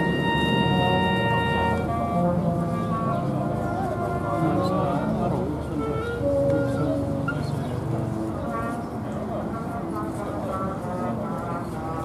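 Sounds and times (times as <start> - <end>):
wind band playing held chords: 0.0 - 12.0.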